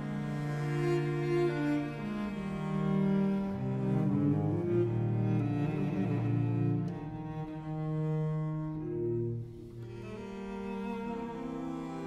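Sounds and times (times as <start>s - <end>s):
cellos playing slow piece: 0.0s - 12.0s.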